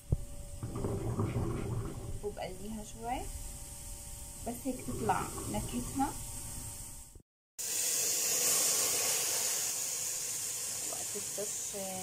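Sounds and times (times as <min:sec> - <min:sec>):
garlic sizzling in hot oil: 0:02.0 - 0:12.0.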